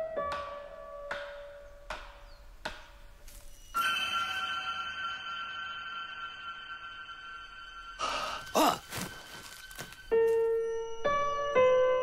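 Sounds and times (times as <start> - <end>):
high shimmering music chord: 3.7 - 11.3.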